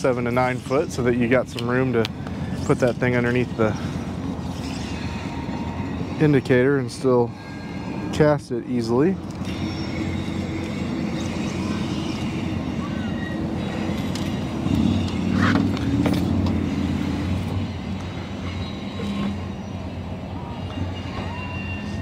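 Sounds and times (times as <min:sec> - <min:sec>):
low motor hum: 0:09.2 - 0:21.0.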